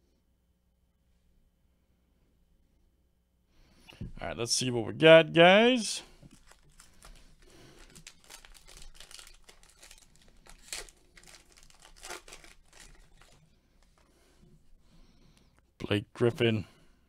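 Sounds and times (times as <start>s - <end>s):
foil wrapper tearing and crinkling: 6.3s - 14.1s.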